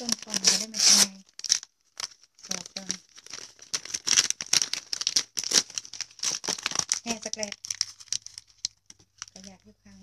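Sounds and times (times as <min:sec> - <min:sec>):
smoked fish tearing and crinkling: 0:00.0 - 0:09.6.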